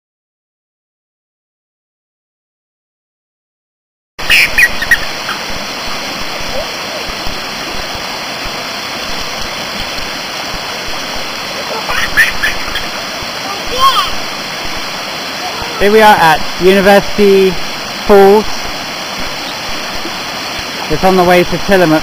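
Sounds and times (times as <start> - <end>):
waterfall and stream rushing: 4.2 - 22.0
children's voices: 11.6 - 12.4, 13.4 - 14.3, 15.3 - 15.9.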